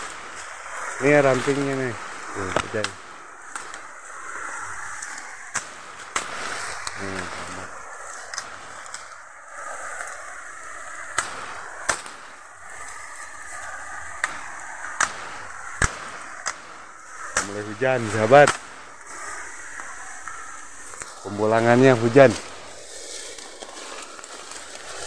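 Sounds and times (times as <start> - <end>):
bamboo leaves rustling: 0.0 - 25.0
sharp cracks of bamboo: 0.0 - 25.0.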